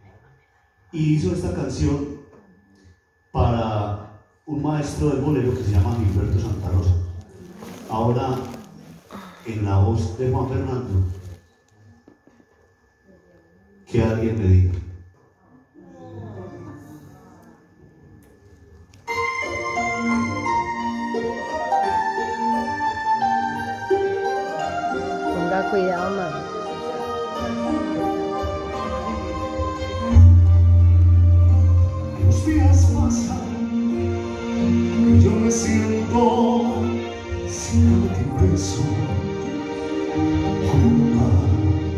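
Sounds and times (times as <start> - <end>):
faint steady high tone: 0.0 - 7.4, 8.1 - 31.9
man's amplified announcement: 0.9 - 2.3, 3.4 - 8.7, 9.4 - 11.3, 13.9 - 15.0, 32.2 - 33.7, 37.5 - 39.3.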